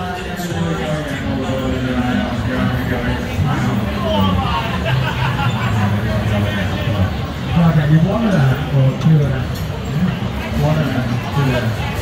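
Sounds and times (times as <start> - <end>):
babble of voices: 0.0 - 12.0
ride car humming on track: 0.0 - 12.0.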